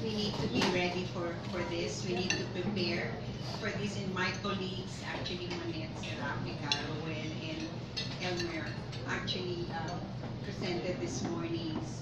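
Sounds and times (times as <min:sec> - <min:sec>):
dishes and cutlery clinking: 0:00.1 - 0:03.1, 0:06.6 - 0:09.2.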